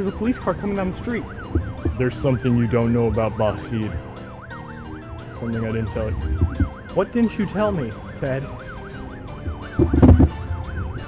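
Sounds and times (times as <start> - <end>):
police siren yelping: 0.0 - 11.0
low rumble: 0.6 - 7.2.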